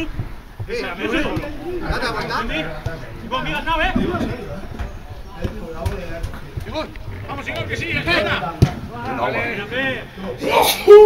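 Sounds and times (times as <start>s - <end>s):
football being kicked: 0.0s - 1.8s.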